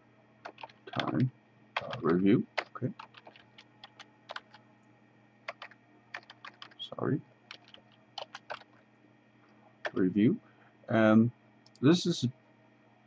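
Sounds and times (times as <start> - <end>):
keyboard typing clicks: 0.5 - 4.6, 5.5 - 6.8, 7.5 - 8.8, 9.8 - 10.0.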